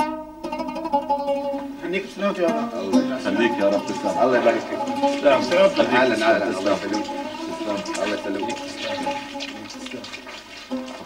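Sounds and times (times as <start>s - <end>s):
rushing water: 1.5s - 11.0s.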